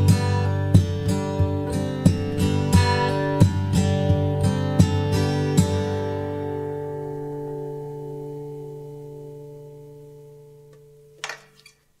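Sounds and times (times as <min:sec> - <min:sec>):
acoustic guitar chord ringing: 0:00.0 - 0:11.7.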